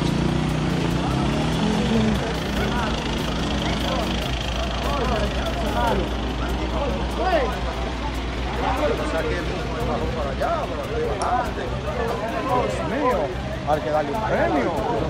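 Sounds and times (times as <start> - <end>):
indistinct voices: 0.0 - 15.0
truck engine idling: 0.0 - 15.0.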